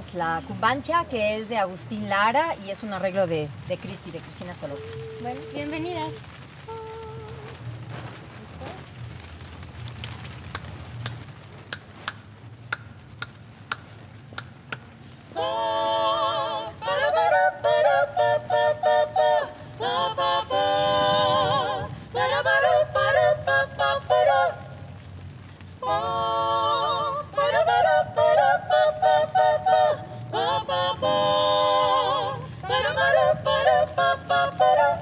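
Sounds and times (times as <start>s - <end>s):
women singing a cappella harmony: 15.3s - 25.0s, 25.8s - 35.0s.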